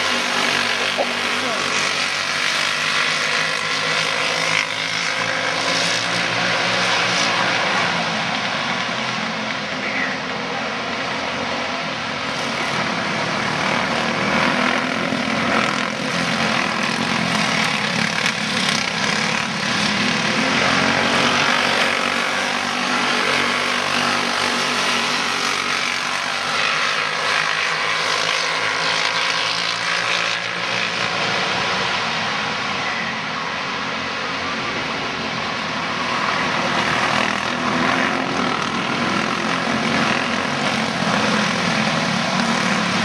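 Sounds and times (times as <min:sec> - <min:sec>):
racing kart engines buzzing: 0:00.0 - 0:43.0.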